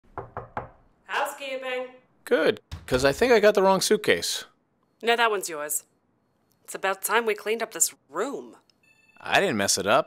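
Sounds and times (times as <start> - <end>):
knocks on a door: 0.0 - 0.8, 2.7 - 3.2.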